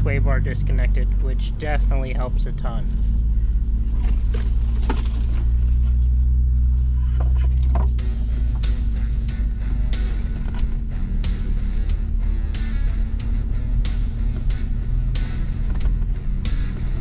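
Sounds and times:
diesel engine droning: 0.0s - 17.0s
background music with guitar: 8.0s - 17.0s.

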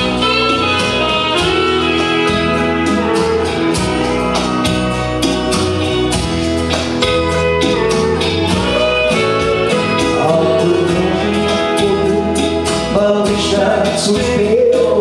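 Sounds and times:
country backing track: 0.0s - 15.0s
man singing into a microphone: 9.8s - 15.0s.

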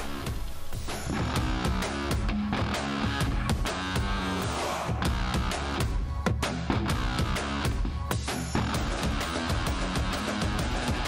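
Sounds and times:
rock music with guitar and drums: 0.8s - 11.0s.

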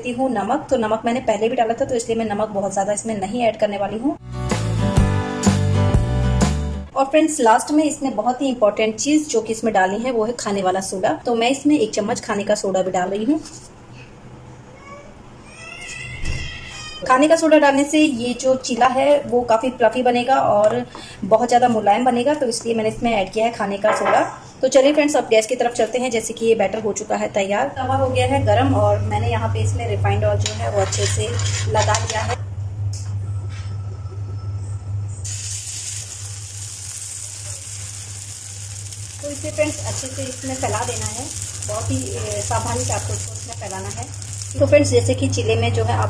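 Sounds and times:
low hum: 27.8s - 46.0s
batter sizzling on hot pan: 35.2s - 46.0s.

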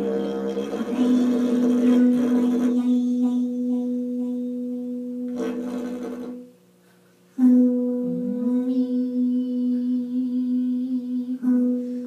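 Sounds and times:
drone music: 0.0s - 6.5s.

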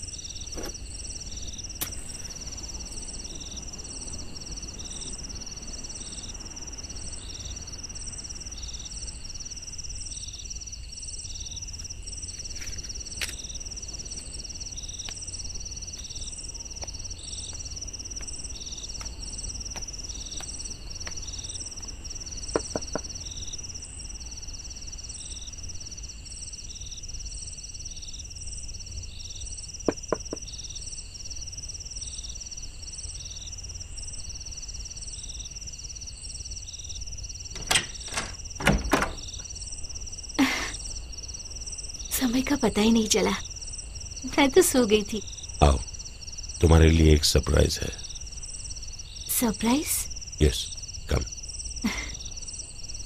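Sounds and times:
insects chirping: 0.0s - 53.0s.

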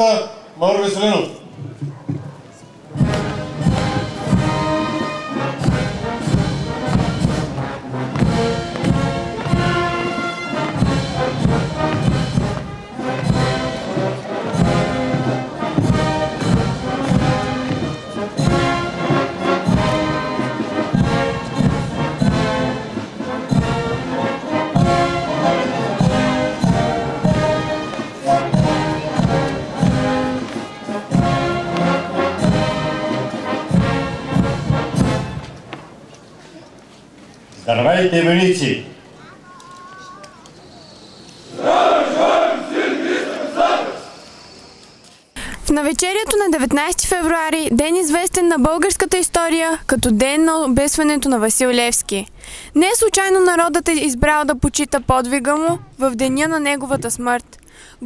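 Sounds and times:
steady drum beat: 2.9s - 35.5s, 55.4s - 57.5s
brass band playing: 2.9s - 35.7s, 41.5s - 44.3s.

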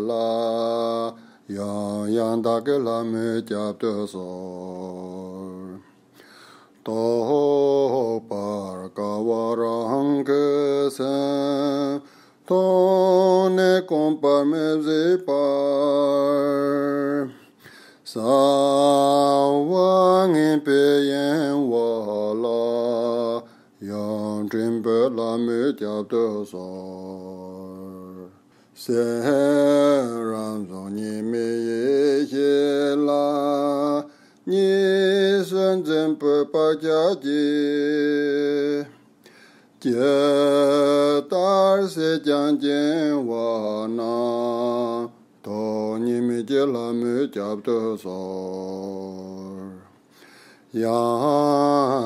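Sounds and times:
man chanting prayer: 0.0s - 5.9s, 6.8s - 17.4s, 18.1s - 39.0s, 39.8s - 49.9s, 50.7s - 52.0s.

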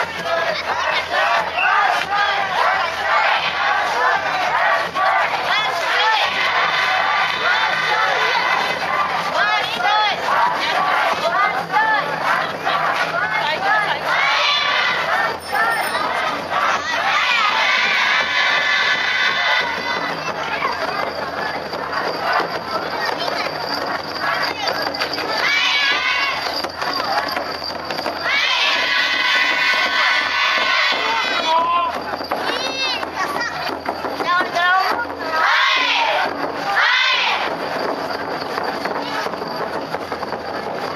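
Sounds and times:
children shouting together: 0.0s - 27.3s, 28.2s - 37.5s
crowd noise: 0.0s - 40.9s.

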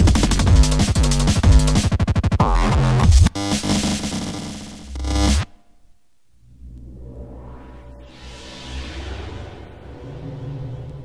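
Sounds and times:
drum and bass music: 0.0s - 5.5s
heavy bass swell: 6.4s - 11.0s.

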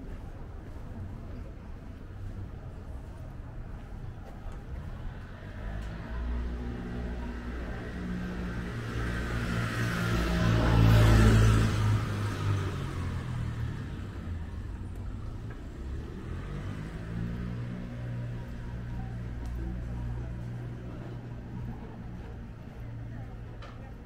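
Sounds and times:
car passing by: 5.2s - 14.7s, 15.4s - 22.3s.

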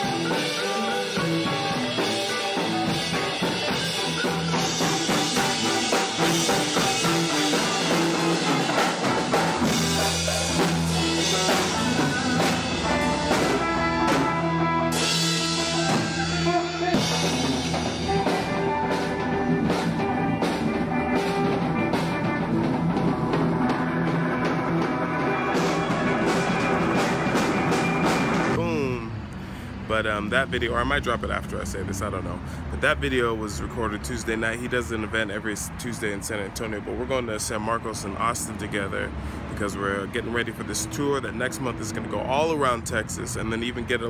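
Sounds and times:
electric guitar: 0.0s - 28.6s
drum kit with cymbals: 0.0s - 29.0s
electric bass: 0.0s - 34.6s.

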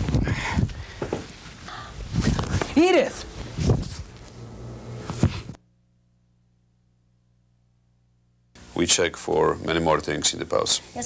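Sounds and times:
footsteps on floor: 0.0s - 1.6s.

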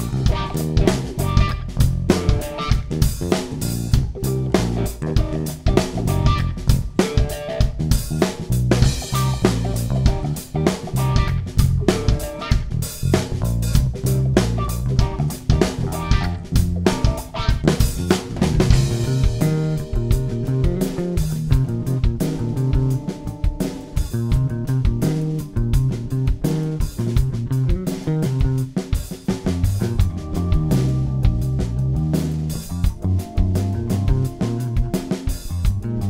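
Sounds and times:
drum kit beat: 0.0s - 36.0s
electric bass played fingerstyle: 0.0s - 36.0s.

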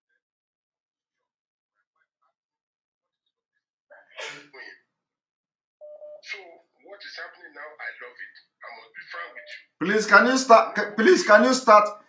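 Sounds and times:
person sneezing: 4.2s - 4.6s.

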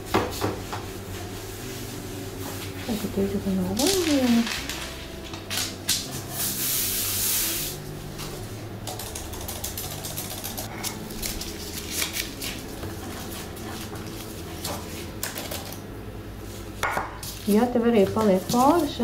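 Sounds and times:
baking paper rustling: 1.6s - 7.8s, 10.7s - 15.2s, 16.4s - 19.0s.

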